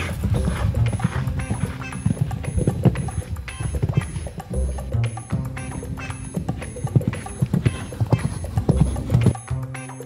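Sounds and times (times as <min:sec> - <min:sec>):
horse hoofbeats on sand: 0:00.0 - 0:09.4.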